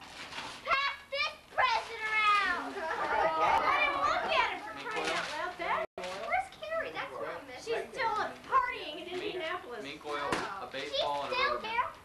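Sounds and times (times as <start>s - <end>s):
young children calling and chattering: 0.6s - 12.0s.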